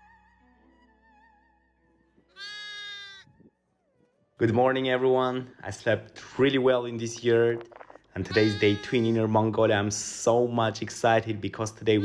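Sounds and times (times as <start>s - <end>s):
lamb bleating: 2.3s - 3.3s, 8.2s - 9.4s.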